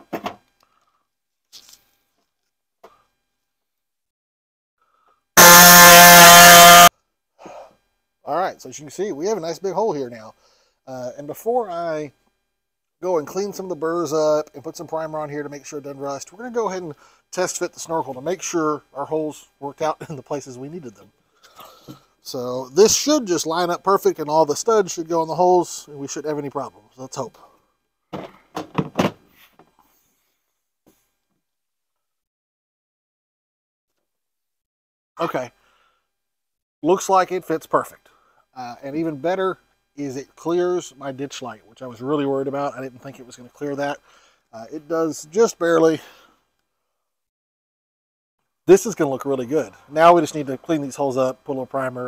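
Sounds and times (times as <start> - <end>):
air saw cutting sheet metal: 5.4 - 6.9.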